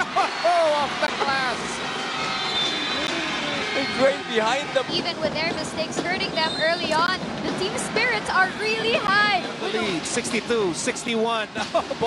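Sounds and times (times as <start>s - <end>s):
crowd cheering: 0.0s - 10.0s.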